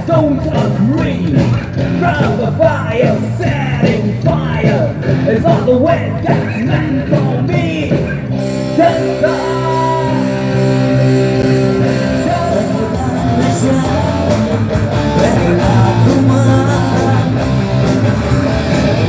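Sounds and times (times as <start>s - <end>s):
person singing: 0.0s - 18.8s
rock band playing: 0.0s - 19.0s.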